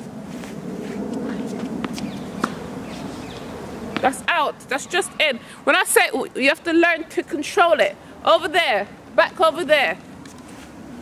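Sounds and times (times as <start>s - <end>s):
steady background noise: 0.0s - 11.0s
tennis ball hits and bounces: 1.5s - 4.2s.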